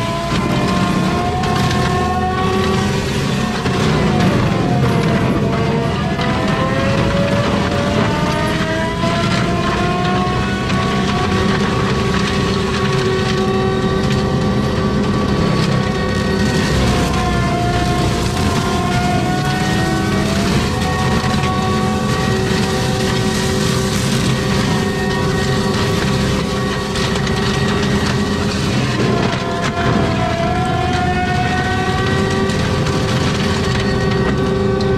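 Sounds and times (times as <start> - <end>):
diesel engine running: 0.0 - 34.9
mulcher drum whining grinding brush: 0.0 - 34.9.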